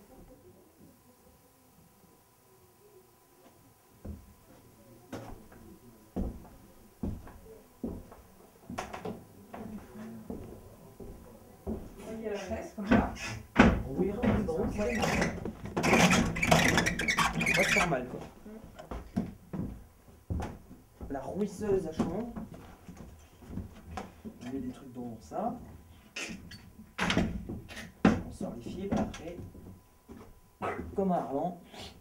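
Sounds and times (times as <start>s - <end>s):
footsteps on wooden floor: 4.0s - 5.4s, 6.2s - 12.2s, 12.8s - 24.4s.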